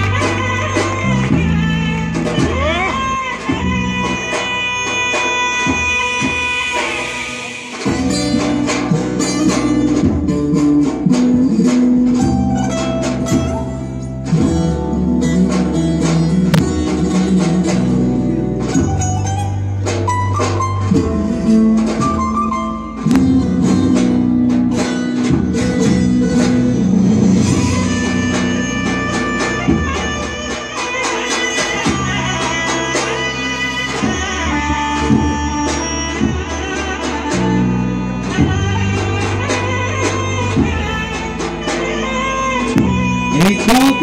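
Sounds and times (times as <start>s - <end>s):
drum beats: 0.0s - 44.0s
string instruments melody: 0.0s - 44.0s.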